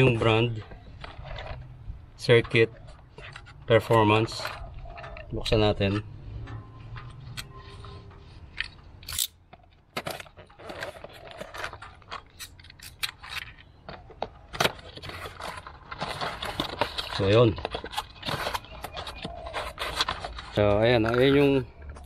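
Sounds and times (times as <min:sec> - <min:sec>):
packaging scraping and rustling: 0:00.0 - 0:22.0.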